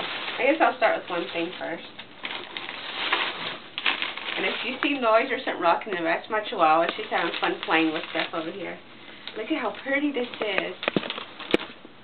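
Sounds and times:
paper rustling and crinkling: 0.0 - 11.8.

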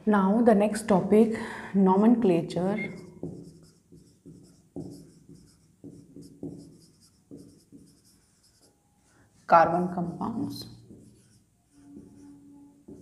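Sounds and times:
whiteboard marker writing: 2.8 - 9.1, 10.4 - 13.0.

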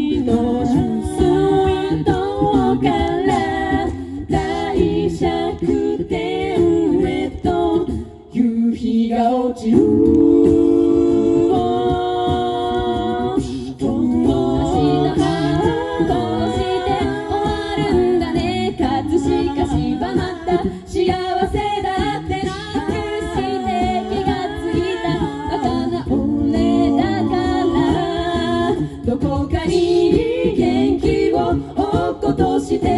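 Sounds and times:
a cappella group singing: 0.0 - 32.9.

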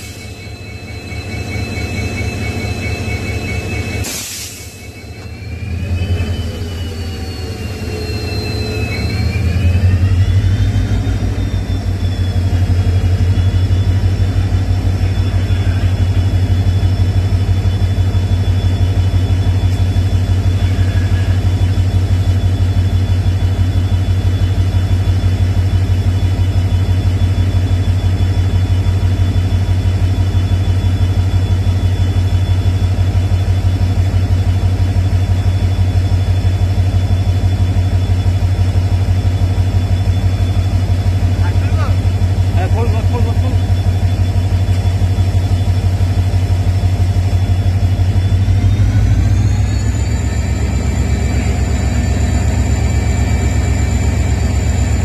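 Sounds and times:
engine idling: 0.0 - 55.0.

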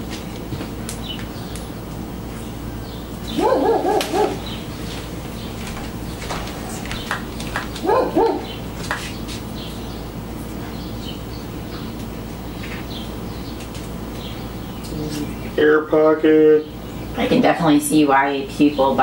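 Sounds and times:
dog barking: 3.3 - 4.5, 7.8 - 8.6.

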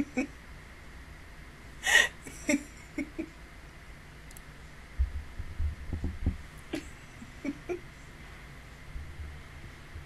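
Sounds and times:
woman laughing: 0.0 - 0.3, 1.8 - 3.4, 6.7 - 7.8
breathy gasp of laughter: 1.8 - 2.6.

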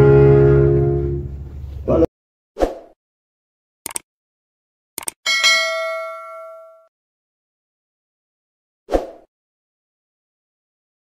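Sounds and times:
notification bell ding: 5.3 - 6.9.

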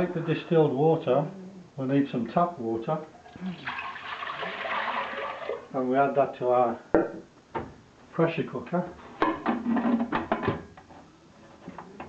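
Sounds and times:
water pouring into metal pot: 3.5 - 5.7.

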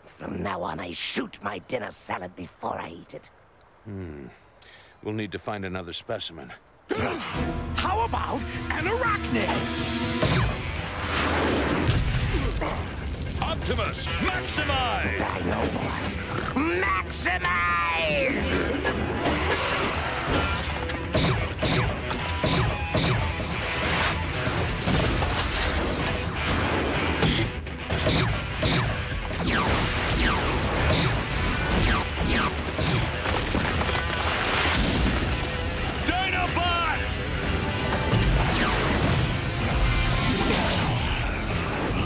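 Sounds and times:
action music: 7.3 - 42.0
laser blasts: 21.1 - 33.3, 38.1 - 41.0
crashing impacts: 29.2 - 36.1.

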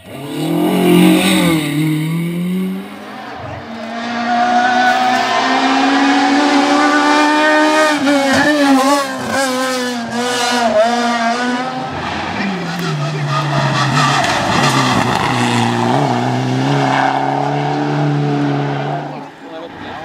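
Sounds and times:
rally car revving and shifting: 0.0 - 20.0.

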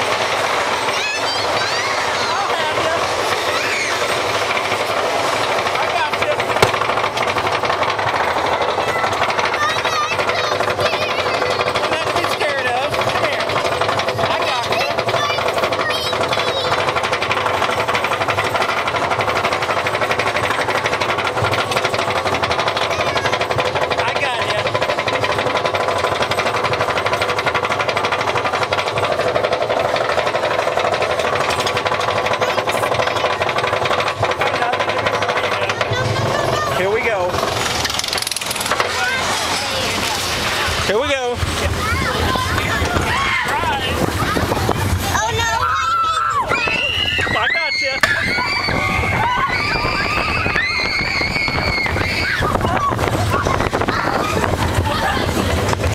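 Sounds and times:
roller coaster cars rattling: 0.0 - 55.9
riders' voices: 0.9 - 45.6.

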